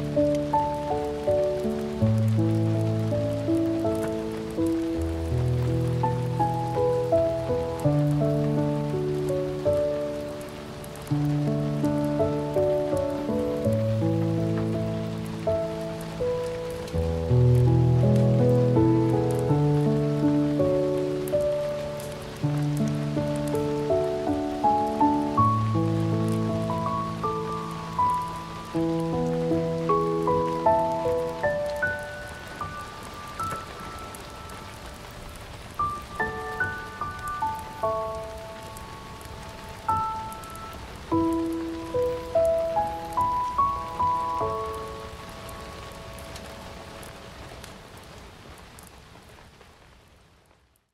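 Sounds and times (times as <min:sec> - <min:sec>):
slow gentle piano music: 0:00.0 - 0:50.0
faint rain-like patter: 0:00.0 - 0:50.9.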